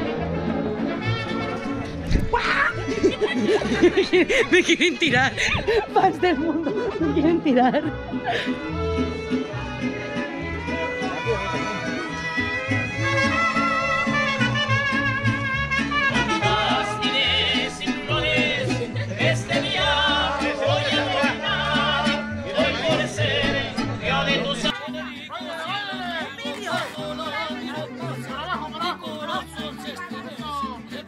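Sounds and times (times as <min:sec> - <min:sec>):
lively latin band with singing: 0:05.3 - 0:31.0.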